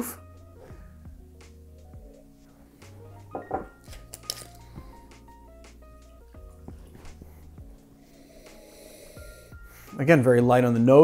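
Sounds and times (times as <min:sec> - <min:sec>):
quiet background music: 0:00.0 - 0:11.0
glasses clinking on wooden counter: 0:03.3 - 0:03.8.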